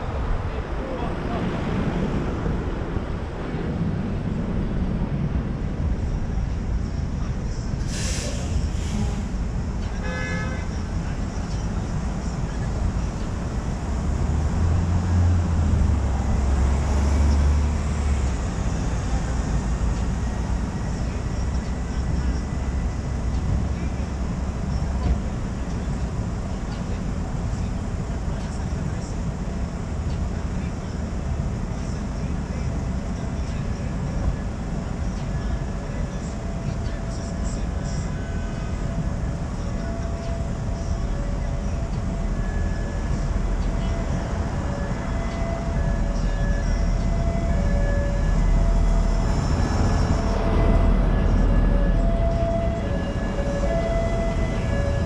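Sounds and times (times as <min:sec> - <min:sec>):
traffic rumble: 0:00.0 - 0:55.0
car horn toot: 0:10.0 - 0:10.7.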